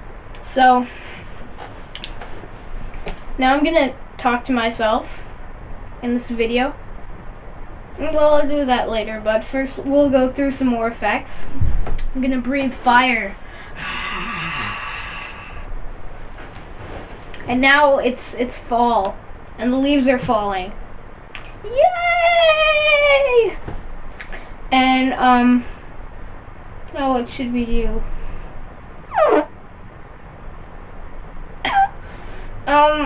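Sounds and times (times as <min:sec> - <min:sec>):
person coughing: 0:31.6 - 0:32.0
forceful breathy exhale: 0:32.0 - 0:32.6.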